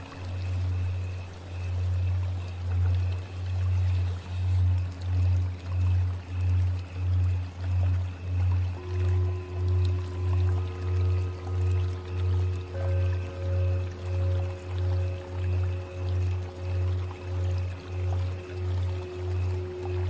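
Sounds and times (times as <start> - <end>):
low pulsing humming drone: 0.0 - 20.0
rush like flowing water: 0.0 - 20.0
faint high tones: 8.3 - 20.0.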